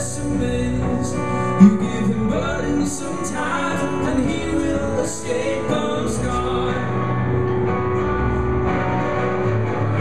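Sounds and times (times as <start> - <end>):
live band guitars playing: 0.0 - 10.0.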